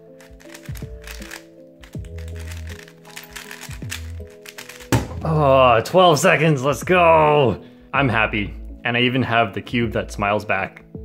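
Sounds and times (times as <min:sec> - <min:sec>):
background music: 0:00.0 - 0:11.0
puzzle cube clicking: 0:00.1 - 0:05.0.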